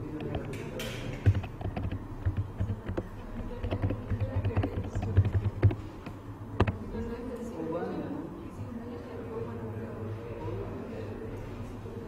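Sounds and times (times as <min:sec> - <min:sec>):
typing on computer keyboard: 0:00.2 - 0:05.8.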